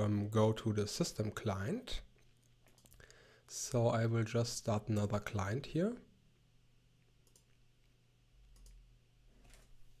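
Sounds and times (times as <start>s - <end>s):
faint steady hum: 0.0s - 10.0s
computer mouse clicks: 2.6s - 3.1s, 7.2s - 7.6s, 8.4s - 8.8s.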